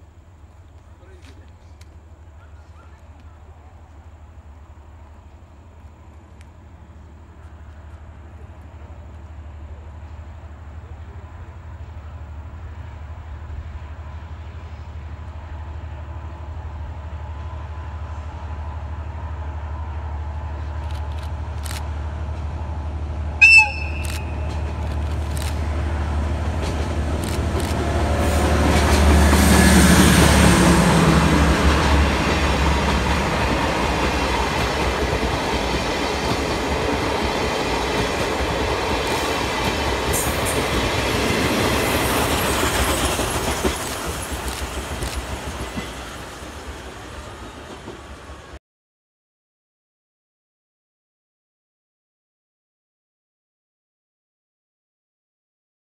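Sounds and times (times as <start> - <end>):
diesel locomotive engine drone: 0.0 - 48.6
train horn blast: 23.4 - 24.6
train wheels clattering over rail joints: 26.4 - 30.0, 31.7 - 46.1.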